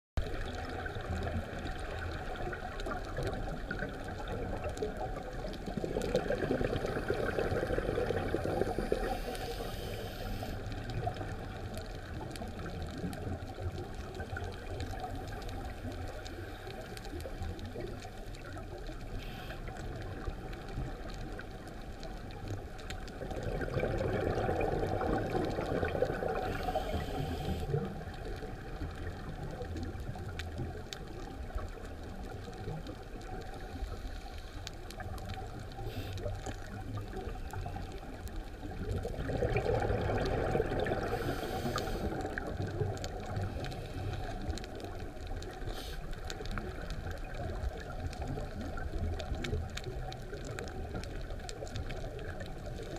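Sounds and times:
underwater exhaled bubbles: 0.2 - 52.9
underwater hiss: 5.7 - 11.3, 19.0 - 21.0, 24.0 - 28.3, 33.5 - 37.9, 39.6 - 46.8.

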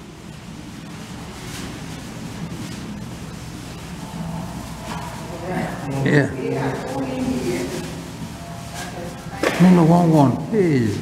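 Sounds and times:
steady rushing noise: 0.0 - 11.0
indistinct voices: 3.4 - 11.0.

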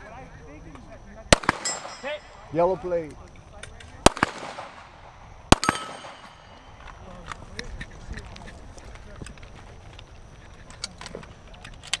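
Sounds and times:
handgun shot: 1.4 - 2.2, 4.1 - 6.6
metallic clang of steel target: 1.4 - 2.5, 5.6 - 6.6.

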